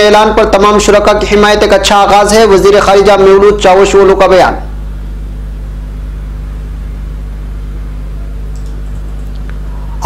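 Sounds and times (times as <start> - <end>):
low hum: 4.6 - 10.0.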